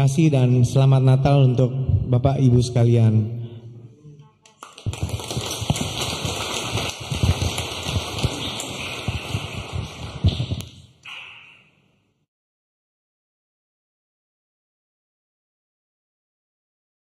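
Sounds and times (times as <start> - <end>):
audience applauding: 4.6 - 10.7.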